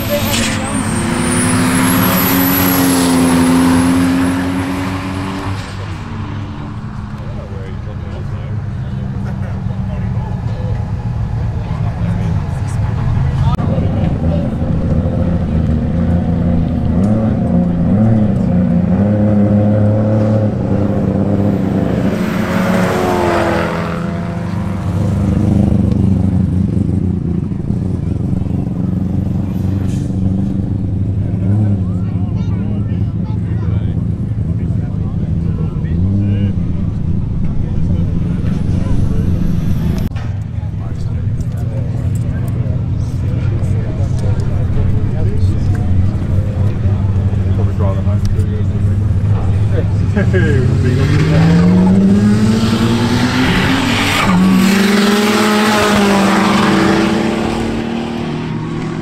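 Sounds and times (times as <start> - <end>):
car engines accelerating hard: 0.0 - 59.0.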